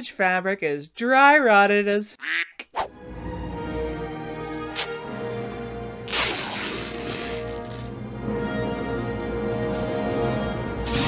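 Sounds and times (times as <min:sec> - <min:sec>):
background music: 0:02.8 - 0:11.0
fabric ripping: 0:04.7 - 0:05.0, 0:06.1 - 0:07.9.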